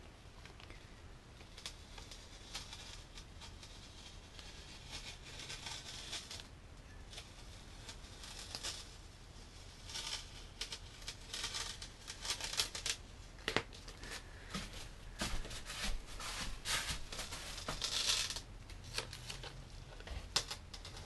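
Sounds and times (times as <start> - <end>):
tape strip crinkling: 7.1 - 21.0
masking tape peeling: 9.8 - 13.0.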